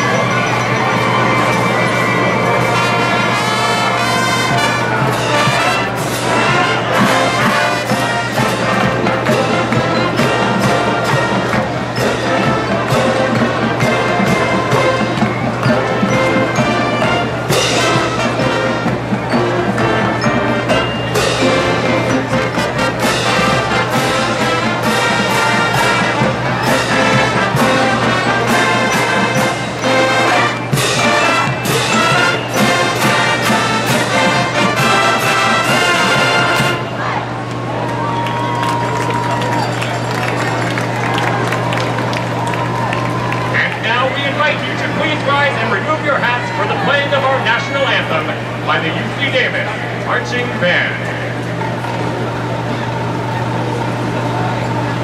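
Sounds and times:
marching band playing: 0.0 - 55.0.

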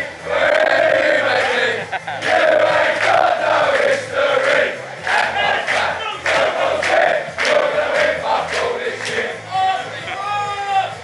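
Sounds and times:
crowd of men chanting and shouting: 0.0 - 11.0.

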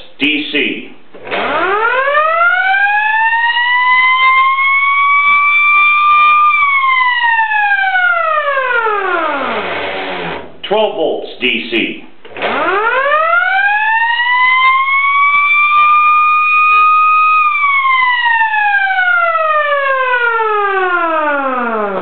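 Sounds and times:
electric siren wailing: 1.3 - 10.5, 12.4 - 22.0.

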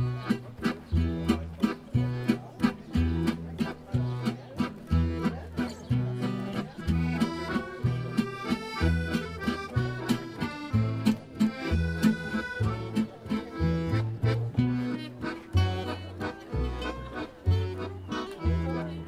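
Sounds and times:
accordion melody: 0.0 - 19.0
acoustic guitar chords: 0.0 - 19.0
plucked double bass: 0.0 - 19.0.

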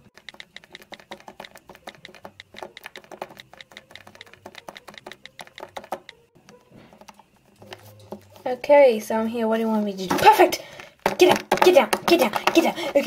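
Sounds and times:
rapid keyboard typing: 0.0 - 6.2.

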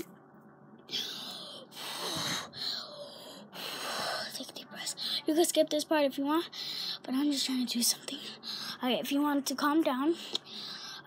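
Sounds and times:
girl breathing deeply: 0.9 - 4.4, 6.5 - 7.0, 8.2 - 8.8, 10.1 - 11.0.

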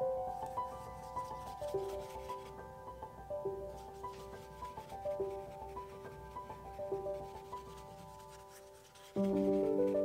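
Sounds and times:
soft background music: 0.0 - 10.0
paintbrush rubbing on paper: 0.5 - 2.7, 3.6 - 10.0.

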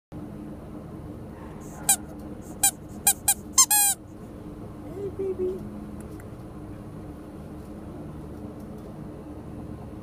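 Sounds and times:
steady low hum: 0.2 - 10.0
dog whining: 1.5 - 4.0.

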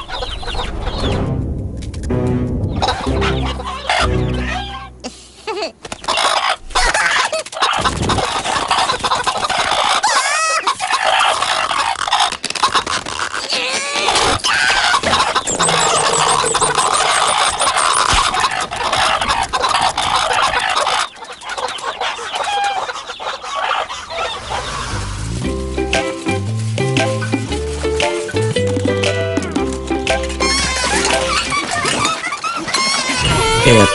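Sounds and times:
chicken-like clucking and squawks: 5.8 - 14.3, 19.4 - 24.9
cartoon sound effects: 15.5 - 18.2.

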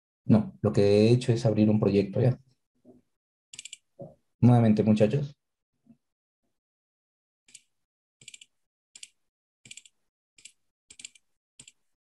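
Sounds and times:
faint keyboard typing: 3.6 - 3.9, 7.5 - 11.8.

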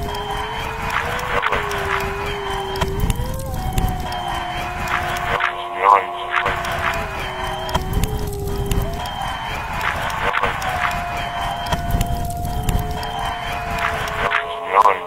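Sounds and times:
music with long held notes: 0.0 - 15.0.

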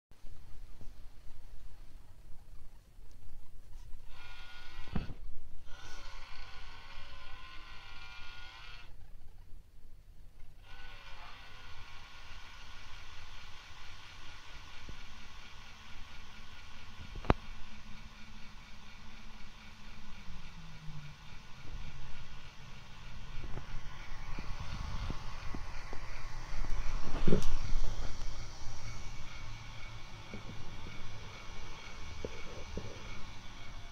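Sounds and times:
projector whine: 0.2 - 9.5, 10.3 - 33.9
low hum: 13.0 - 33.9.

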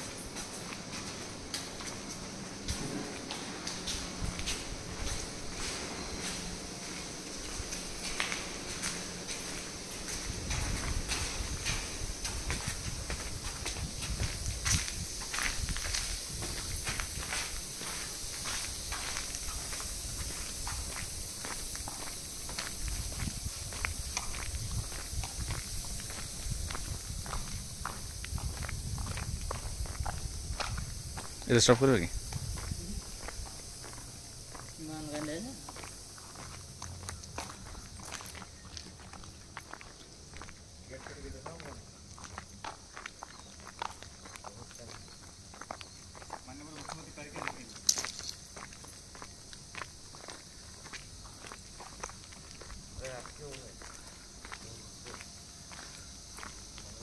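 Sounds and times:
footsteps on hard floor: 0.0 - 20.9.

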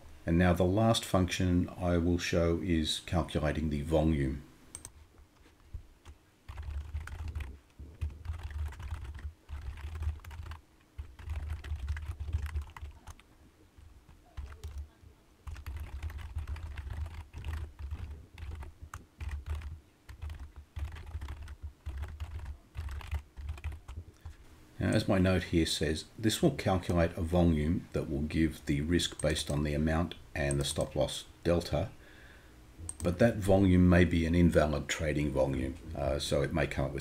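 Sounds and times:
typing on a computer keyboard: 6.0 - 13.3, 14.1 - 24.4.

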